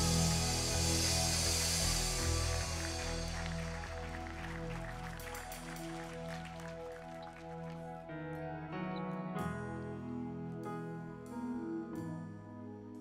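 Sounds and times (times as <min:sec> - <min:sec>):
high hiss-like wash: 0:00.0 - 0:06.5
low bass: 0:00.0 - 0:08.0
worship band holding chords: 0:00.0 - 0:13.0.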